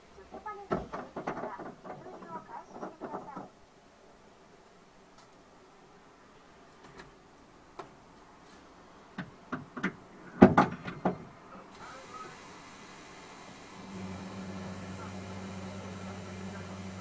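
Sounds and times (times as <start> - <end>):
clicks and knocks in car cabin: 9.2 - 11.3
steady low hum: 10.0 - 17.0.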